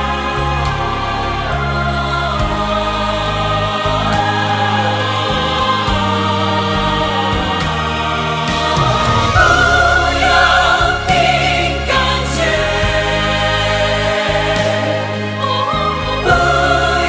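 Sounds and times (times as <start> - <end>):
choir singing gospel: 0.0 - 17.0
instrumental accompaniment with bass: 0.0 - 17.0.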